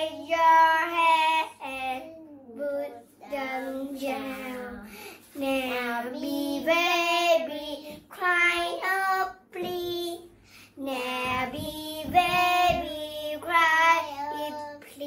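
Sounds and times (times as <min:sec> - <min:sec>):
girls singing: 0:00.0 - 0:15.0.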